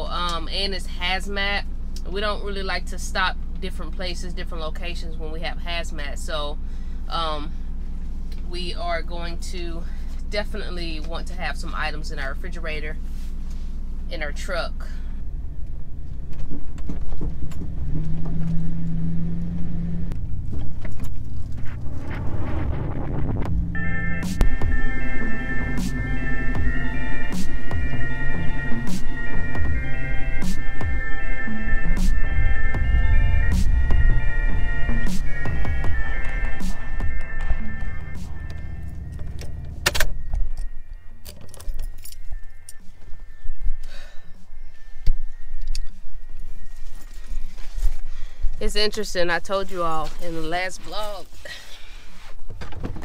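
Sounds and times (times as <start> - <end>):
vehicle engine rumbling: 0.0 - 53.0
electronic music: 21.3 - 43.8
keys jangling: 40.5 - 42.8.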